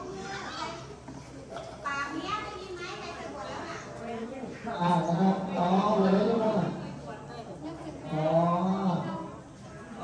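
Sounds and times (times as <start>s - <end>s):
children talking and calling out: 0.0s - 5.0s.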